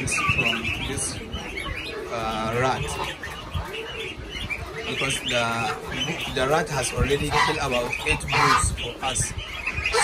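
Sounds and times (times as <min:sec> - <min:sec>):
goslings peeping: 0:00.0 - 0:10.0.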